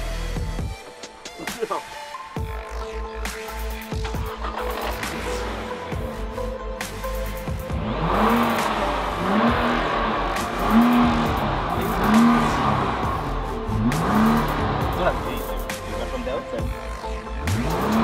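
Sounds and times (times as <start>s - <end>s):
car engine revving: 2.5s - 18.0s.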